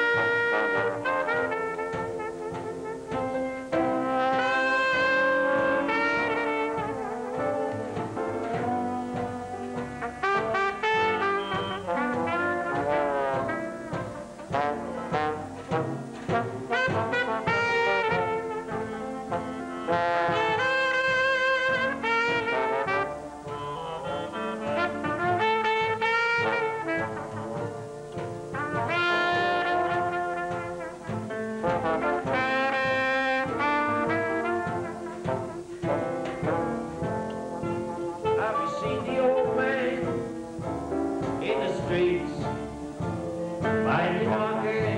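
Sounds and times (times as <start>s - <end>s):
drums: 0.0s - 44.9s
trombone: 0.0s - 44.9s
trumpet: 0.0s - 44.9s.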